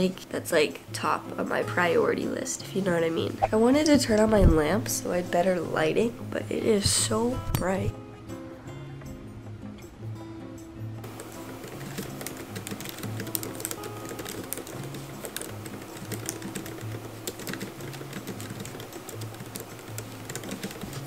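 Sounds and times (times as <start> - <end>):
soft background music: 0.0 - 21.0
laptop keyboard typing: 11.1 - 21.0.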